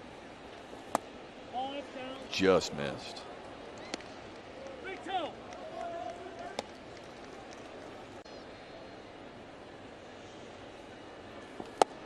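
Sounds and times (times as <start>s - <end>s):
murmur of ballpark crowd: 0.0s - 12.0s
baseball popping into catcher's mitt: 11.6s - 12.0s.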